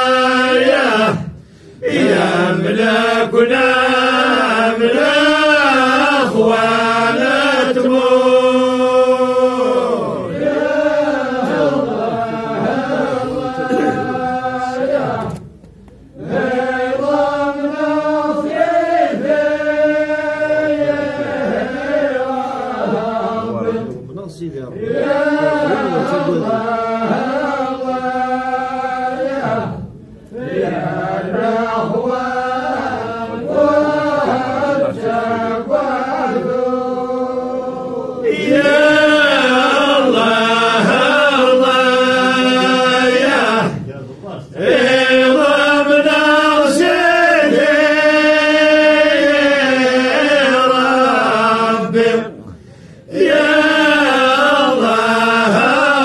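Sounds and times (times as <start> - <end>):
group chanting in unison: 0.0 - 24.0, 24.7 - 56.0.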